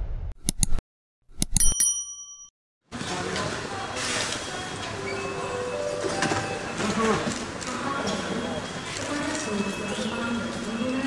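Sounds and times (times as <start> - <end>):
mouse click: 0.4 - 0.8
notification bell ding: 1.4 - 2.5.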